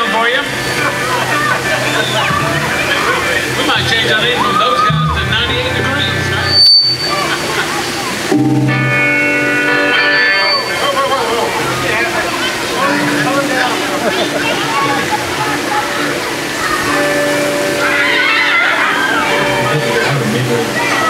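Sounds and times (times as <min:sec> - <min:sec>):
crowd chatter: 0:00.0 - 0:21.0
sustained instrument notes: 0:08.2 - 0:11.2, 0:12.8 - 0:14.8
band chord ringing out: 0:08.3 - 0:10.8.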